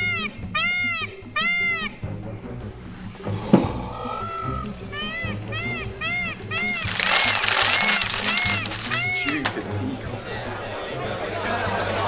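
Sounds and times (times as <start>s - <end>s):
background music: 0.0s - 12.0s
paper shuffling on a desk: 6.8s - 9.6s.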